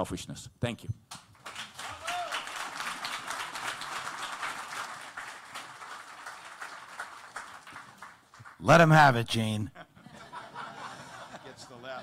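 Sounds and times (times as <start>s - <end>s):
audience applauding: 1.4s - 8.6s.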